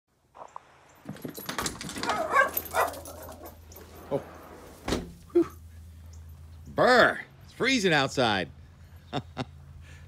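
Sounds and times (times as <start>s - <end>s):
dog whining and yipping: 2.0s - 3.8s.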